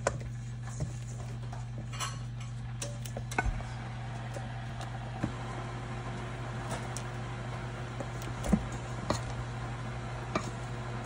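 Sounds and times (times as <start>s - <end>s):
steady low hum: 0.0s - 11.0s
utensils tapping steel bowl: 10.3s - 10.6s.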